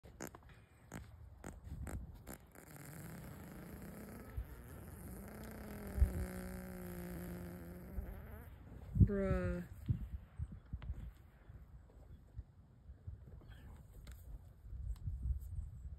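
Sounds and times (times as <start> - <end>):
horse farting: 0.0 - 8.8.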